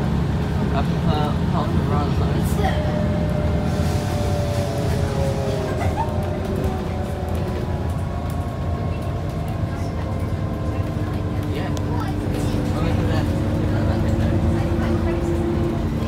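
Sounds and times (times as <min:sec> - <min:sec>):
bus diesel engine rumble: 0:00.0 - 0:16.0
rising engine whine: 0:00.0 - 0:16.0
road noise: 0:00.0 - 0:16.0.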